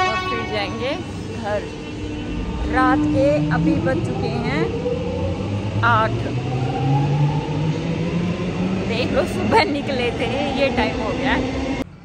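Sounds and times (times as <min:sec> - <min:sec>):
electric train hum rising in pitch: 0:00.0 - 0:12.0.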